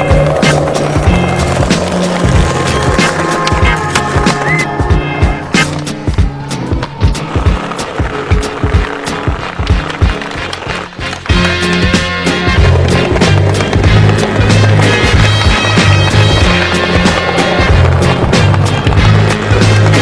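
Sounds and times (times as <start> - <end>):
skateboard clacks: 0.0 - 4.5, 6.8 - 20.0
background music with bass: 0.0 - 20.0
skateboard wheels rolling on concrete: 0.0 - 20.0.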